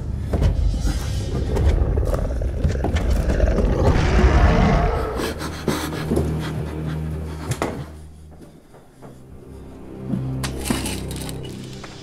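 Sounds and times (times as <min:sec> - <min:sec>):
roar-like surge: 0:01.0 - 0:05.4.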